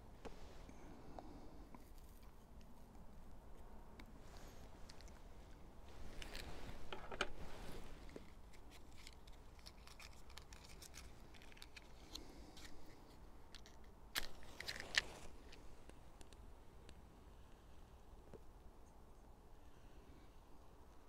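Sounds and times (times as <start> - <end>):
clicks and rustling handling: 1.2 - 16.4
match striking and flaring: 14.1 - 15.7.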